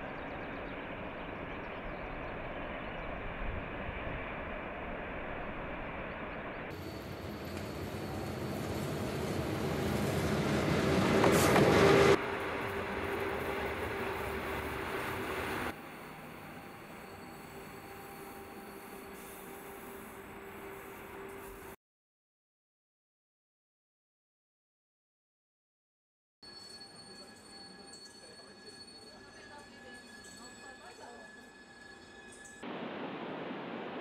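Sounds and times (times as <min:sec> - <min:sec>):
rumble of train running: 0:00.0 - 0:21.8
train approaching on track: 0:00.0 - 0:21.8, 0:26.4 - 0:34.0.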